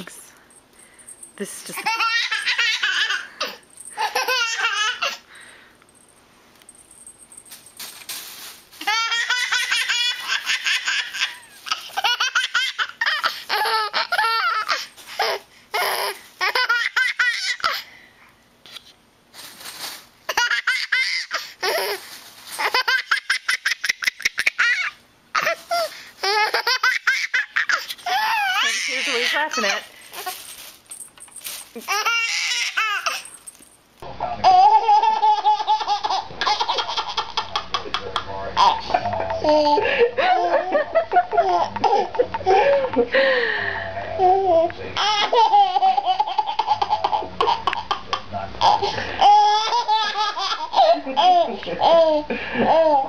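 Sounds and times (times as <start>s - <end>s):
baby laughing: 1.8s - 5.2s, 8.8s - 17.9s, 20.3s - 30.4s, 31.8s - 33.4s, 34.4s - 43.1s, 44.1s - 53.0s.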